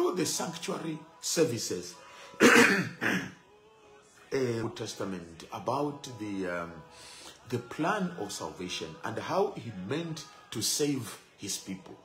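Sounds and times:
man coughing: 2.4s - 3.3s.

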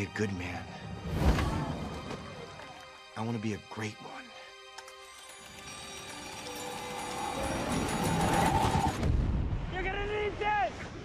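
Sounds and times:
trailer music with held note: 0.0s - 9.6s.

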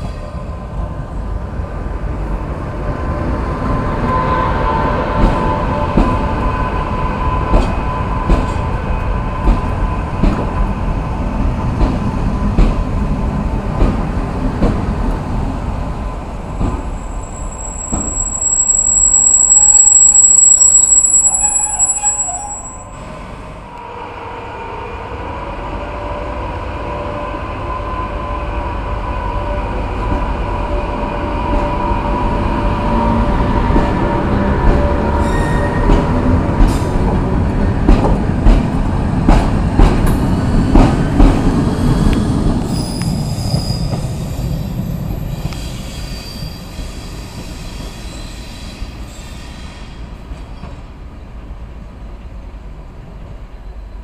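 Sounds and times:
loud high-pitched squeal: 16.9s - 24.8s.

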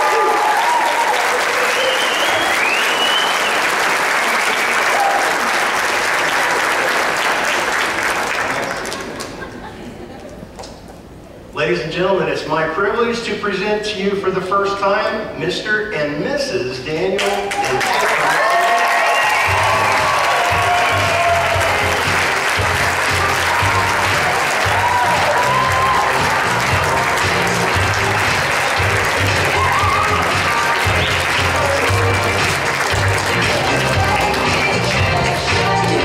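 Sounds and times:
people applauding: 0.0s - 9.7s, 17.2s - 36.0s
music with bass beat: 20.6s - 36.0s.

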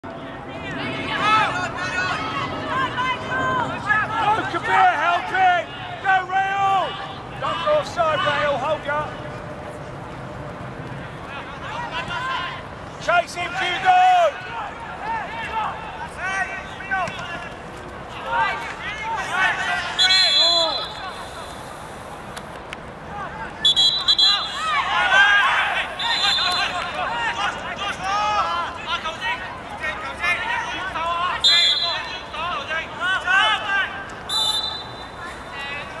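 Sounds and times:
young players shouting: 0.5s - 9.1s, 11.3s - 17.5s, 18.1s - 21.2s, 23.1s - 36.0s
referee whistle blasts: 20.0s - 21.5s, 23.6s - 24.8s, 26.0s - 26.8s, 31.4s - 32.1s, 34.3s - 35.4s.

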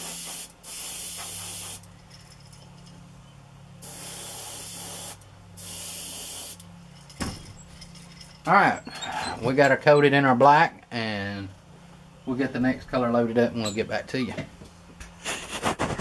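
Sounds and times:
airbrush spraying hiss: 0.0s - 1.9s, 3.8s - 6.6s.

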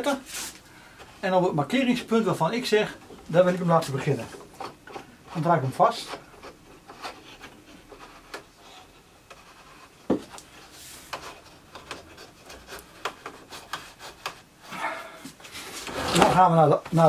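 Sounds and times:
light wood rubbing: 0.0s - 17.0s.

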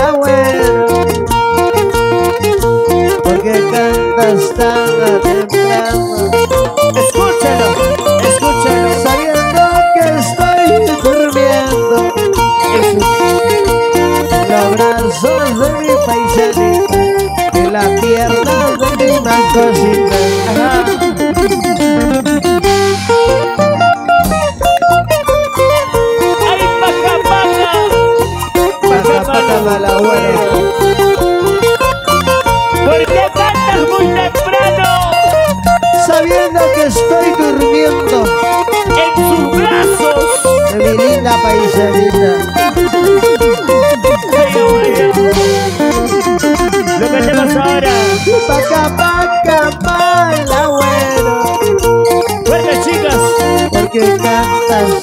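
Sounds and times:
guitar picking fast runs: 0.0s - 55.0s
live band playing: 0.0s - 55.0s.

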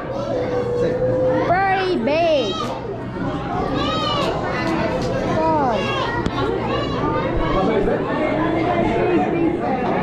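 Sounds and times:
children's voices calling: 0.0s - 10.0s.

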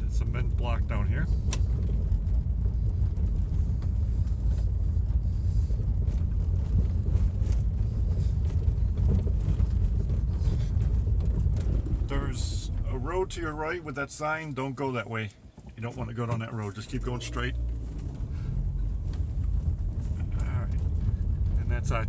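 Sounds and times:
engine and tyres rumbling: 0.0s - 22.0s
light clicks and rattles: 0.2s - 22.0s.

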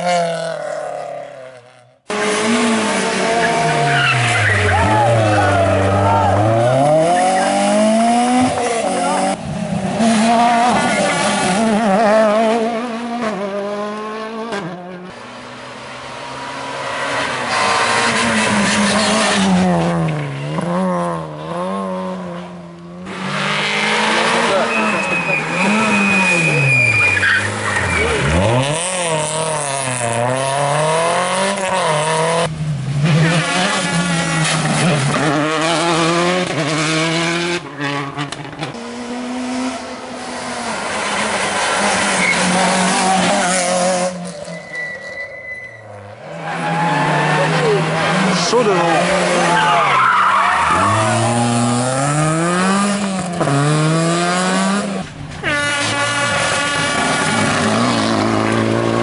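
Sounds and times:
rally car engines revving: 0.0s - 59.0s
tyre squeal: 24.5s - 28.8s, 42.1s - 47.8s, 49.5s - 51.5s.

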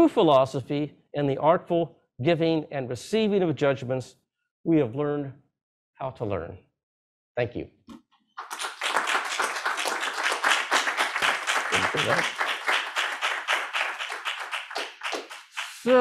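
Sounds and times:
audience applauding: 8.4s - 16.0s.

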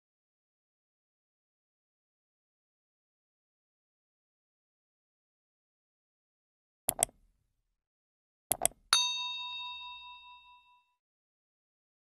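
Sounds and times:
bell-like ding: 9.0s - 11.0s.

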